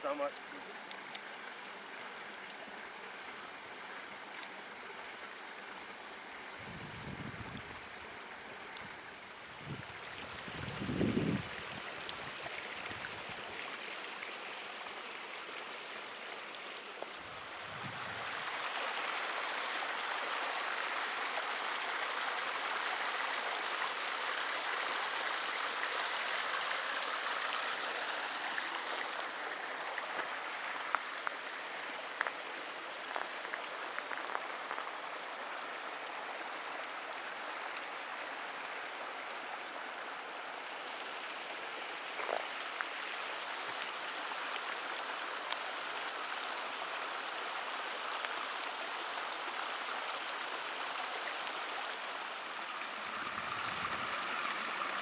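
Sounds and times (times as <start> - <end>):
creek running over rocks: 0.0 - 55.0
wind rumble on microphone: 6.6 - 7.8, 9.5 - 11.9, 17.6 - 18.3.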